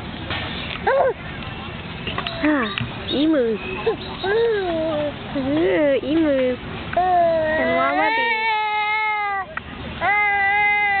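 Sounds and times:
baby crying: 0:07.0 - 0:11.0.

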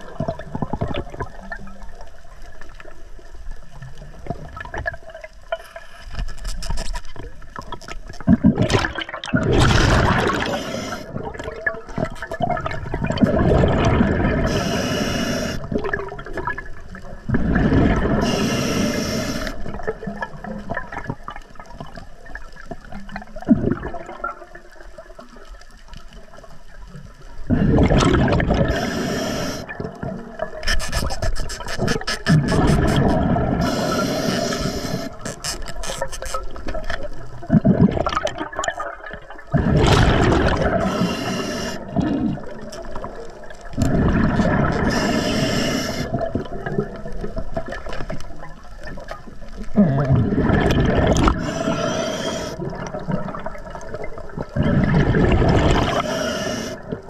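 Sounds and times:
underwater bubbles from exhaling: 0:00.0 - 0:02.1, 0:07.6 - 0:25.4, 0:27.3 - 0:35.4, 0:36.6 - 0:57.0
regulator hiss: 0:10.4 - 0:11.1, 0:14.4 - 0:15.6, 0:18.2 - 0:19.6, 0:28.7 - 0:29.7, 0:33.6 - 0:35.3, 0:40.8 - 0:41.9, 0:44.9 - 0:46.2, 0:51.4 - 0:52.6, 0:56.0 - 0:56.8.

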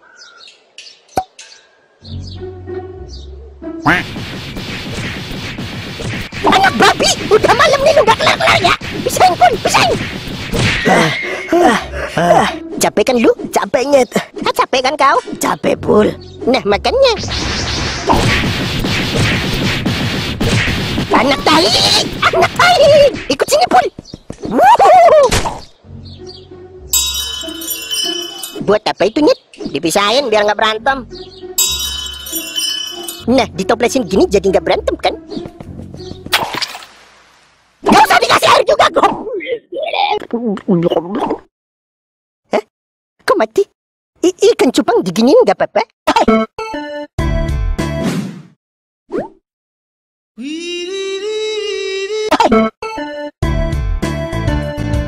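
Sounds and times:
birds chirping: 0:00.0 - 0:04.2, 0:15.2 - 0:16.9, 0:23.3 - 0:24.6, 0:25.6 - 0:36.3
ringing bell-like chime: 0:26.9 - 0:28.7, 0:31.6 - 0:33.3.

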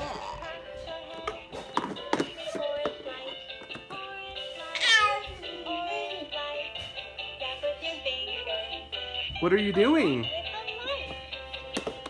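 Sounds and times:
toy playing synthesized tune: 0:07.8 - 0:11.8.

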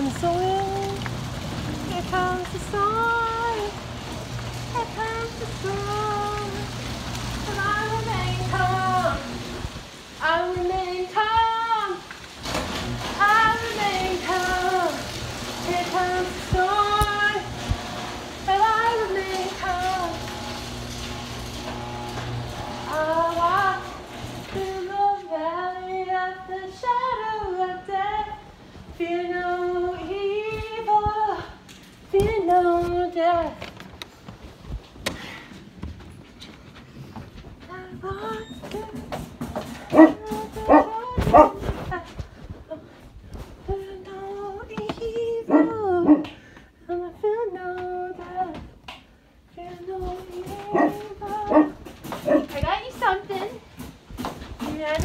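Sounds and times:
dog barking: 0:39.9 - 0:41.6, 0:50.7 - 0:52.5
woman singing held notes: 0:49.6 - 0:53.6.

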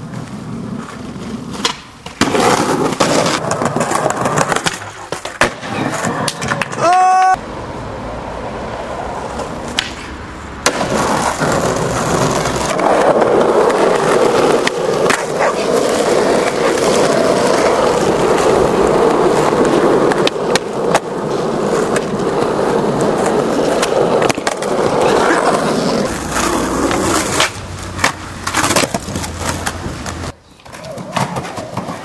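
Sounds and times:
skateboard clacking on ground: 0:00.0 - 0:07.1, 0:09.2 - 0:32.0
skateboard wheels rolling on asphalt: 0:00.0 - 0:32.0.

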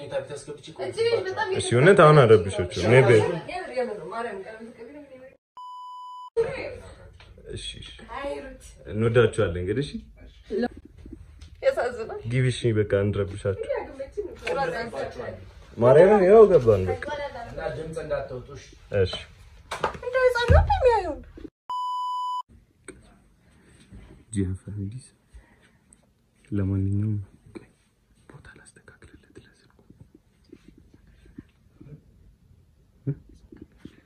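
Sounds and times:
censor bleep: 0:05.6 - 0:06.4, 0:21.7 - 0:22.5.

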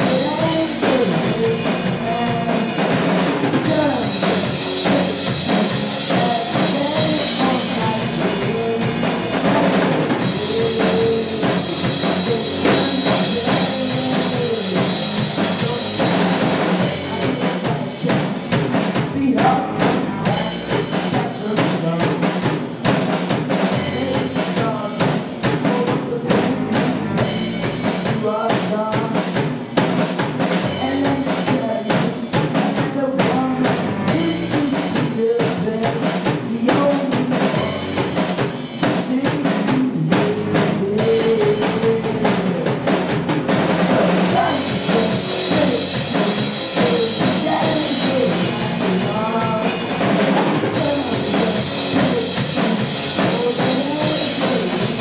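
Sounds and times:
bass guitar: 0:00.0 - 0:55.0
drum kit beat: 0:00.0 - 0:55.0
electric guitar: 0:00.0 - 0:55.0.

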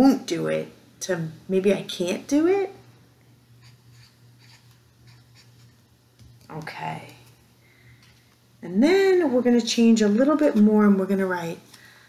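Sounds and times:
marker scratching on paper: 0:03.6 - 0:05.8.

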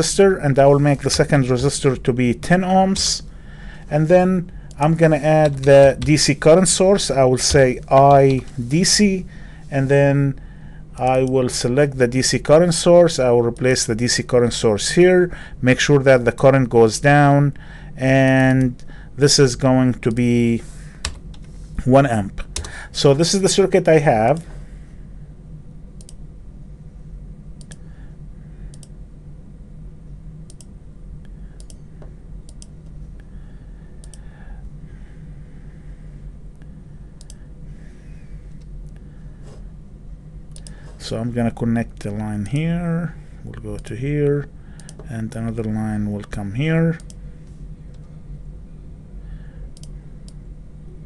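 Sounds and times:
steady low hum: 0:00.0 - 0:51.0
computer mouse clicks: 0:28.7 - 0:29.0, 0:32.5 - 0:32.7, 0:34.0 - 0:34.2, 0:37.2 - 0:37.4, 0:40.5 - 0:40.8, 0:44.8 - 0:45.1, 0:49.8 - 0:50.4.

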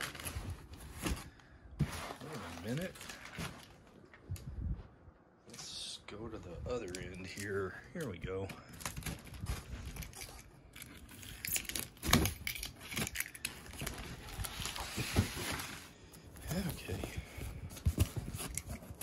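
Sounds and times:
packing paper crinkling: 0:00.0 - 0:01.1, 0:01.8 - 0:04.0, 0:08.7 - 0:17.0
cardboard boxes scraping and knocking: 0:00.1 - 0:03.7, 0:14.6 - 0:15.9, 0:16.5 - 0:19.0.

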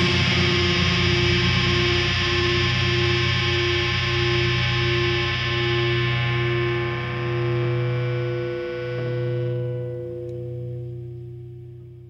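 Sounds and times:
distorted electric guitar chord ringing: 0:00.0 - 0:12.0.

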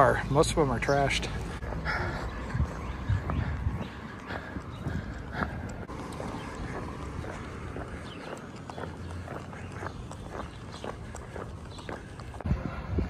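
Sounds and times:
footsteps on brick sidewalk: 0:00.0 - 0:13.0.

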